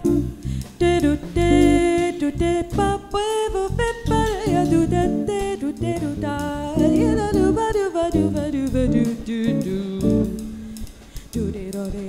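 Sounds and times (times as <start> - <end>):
electric guitar: 0.0 - 11.3
electric bass: 0.0 - 11.8
drum kit with cymbals: 0.0 - 12.0.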